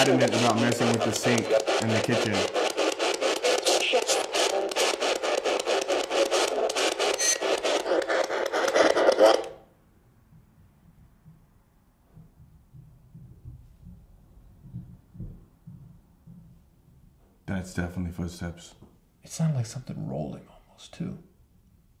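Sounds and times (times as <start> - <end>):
chopped radio static hiss: 0.0 - 9.6
faint low bumps: 9.8 - 17.5.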